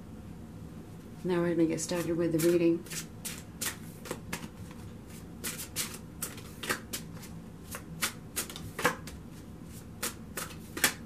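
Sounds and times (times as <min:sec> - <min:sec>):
cards shuffling by hand: 0:01.9 - 0:11.0.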